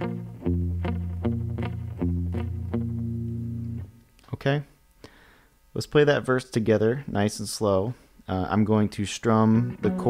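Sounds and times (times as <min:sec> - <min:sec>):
electric guitar boom-chick pattern: 0:00.0 - 0:04.0, 0:09.6 - 0:10.0.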